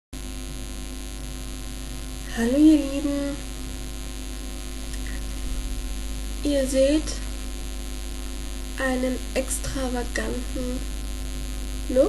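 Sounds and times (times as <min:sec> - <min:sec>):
electrical mains hum with hiss: 0:00.2 - 0:12.0.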